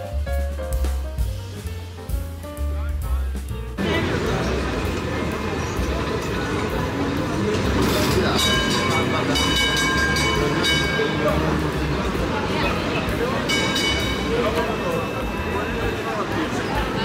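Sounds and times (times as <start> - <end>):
crowd chatter: 2.5 - 17.0
tram passing on rails: 3.8 - 17.0
tram warning bell: 3.8 - 17.0.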